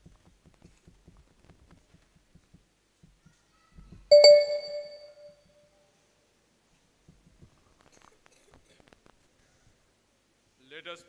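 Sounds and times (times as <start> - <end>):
bell ringing: 4.1 - 5.3.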